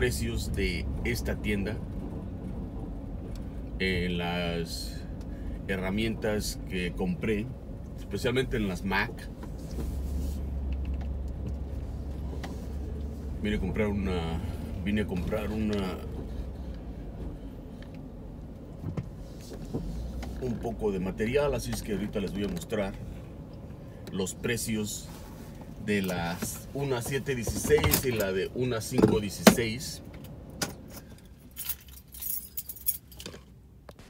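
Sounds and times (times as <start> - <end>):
car engine and tyres rumbling: 0.0 - 34.0
keys jingling: 31.0 - 33.5.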